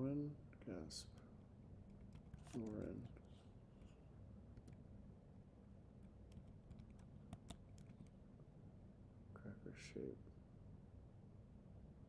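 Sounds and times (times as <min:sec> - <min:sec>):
typing on keyboard: 0:06.3 - 0:08.1.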